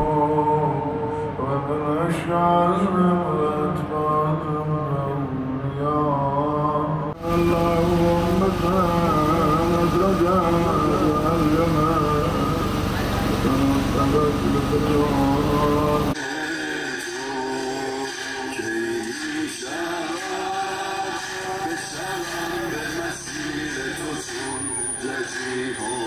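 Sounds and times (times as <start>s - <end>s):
person chanting a lament: 0.0s - 26.0s
person singing: 0.0s - 26.0s
street and crowd noise: 0.0s - 26.0s.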